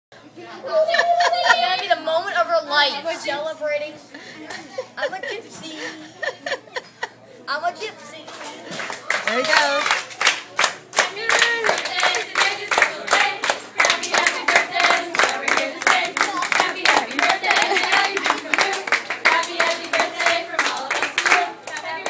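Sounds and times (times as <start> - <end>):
people clapping in rhythm: 8.2 - 22.0
voices singing along: 11.0 - 22.0.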